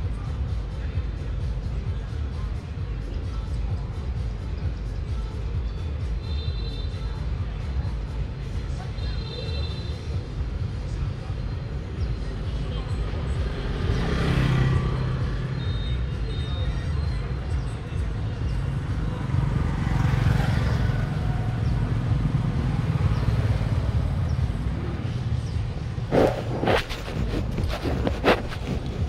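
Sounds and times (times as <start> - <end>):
traffic rumble: 0.0 - 29.0
vehicles passing: 0.0 - 29.0.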